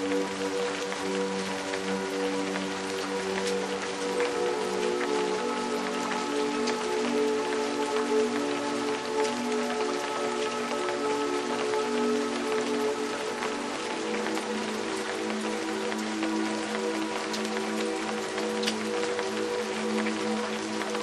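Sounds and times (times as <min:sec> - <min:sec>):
slow music of held notes: 0:00.0 - 0:21.0
steady rain: 0:00.0 - 0:21.0.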